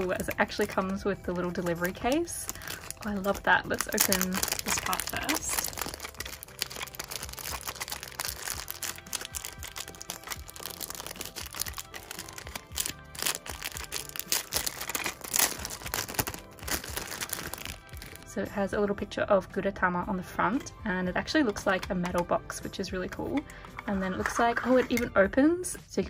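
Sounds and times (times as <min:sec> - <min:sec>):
plastic wrapper crinkling: 0:00.0 - 0:18.3
quiet background music: 0:00.0 - 0:26.0.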